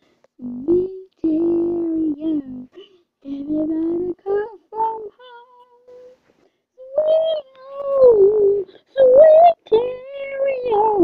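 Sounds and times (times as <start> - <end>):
boy singing unaccompanied: 0.4 - 6.2, 6.8 - 11.0.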